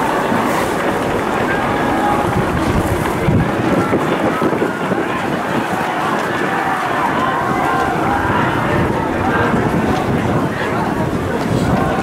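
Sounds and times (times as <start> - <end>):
stadium crowd chatter: 0.0 - 12.0
wind buffeting microphone: 0.0 - 12.0.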